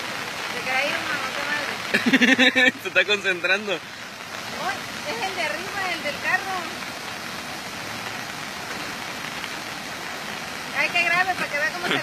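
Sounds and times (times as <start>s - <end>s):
rain and running water: 0.0s - 12.0s.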